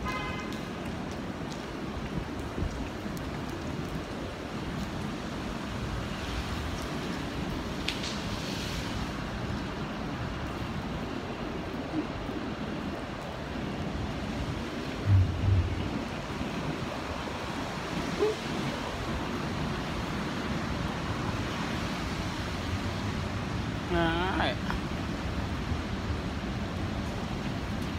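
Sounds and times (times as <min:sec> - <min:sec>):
city street traffic on wet roads: 0:00.0 - 0:27.9
wind on microphone: 0:14.0 - 0:19.6
low thumps: 0:15.0 - 0:16.1.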